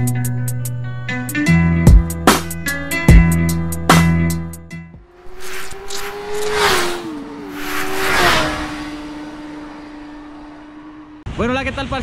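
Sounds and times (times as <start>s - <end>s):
whooshes: 5.2s - 10.3s
steady hum dropping in pitch: 5.2s - 11.2s.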